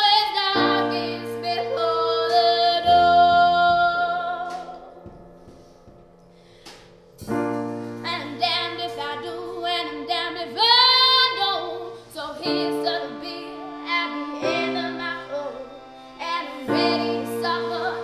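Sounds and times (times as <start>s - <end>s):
woman singing with vibrato: 0.0s - 5.4s, 8.0s - 18.0s
piano chords: 0.0s - 18.0s.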